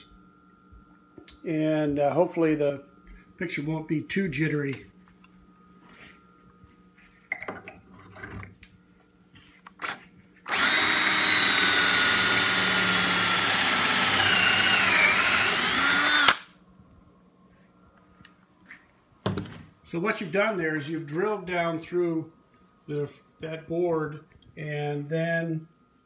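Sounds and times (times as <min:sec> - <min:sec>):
power drill drilling into wood: 0:09.8 - 0:16.5.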